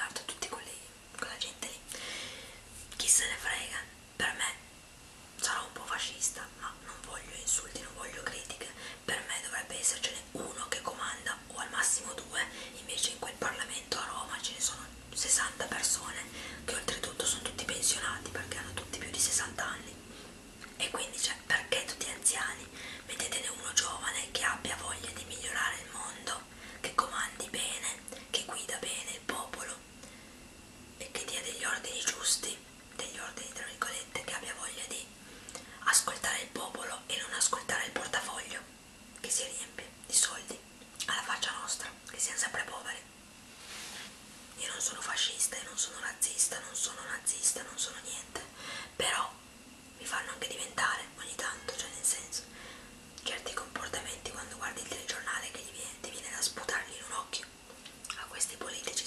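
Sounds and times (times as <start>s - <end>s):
woman whispering: 0.0s - 1.9s, 3.0s - 4.7s, 5.4s - 20.0s, 20.7s - 29.9s, 31.0s - 43.1s, 44.6s - 49.4s, 50.0s - 52.5s, 53.2s - 57.5s, 58.1s - 59.0s.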